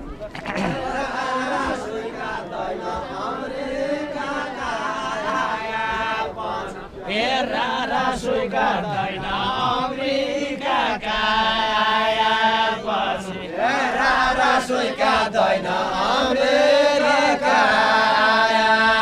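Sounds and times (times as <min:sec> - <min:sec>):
men singing folk song: 0:00.6 - 0:19.0.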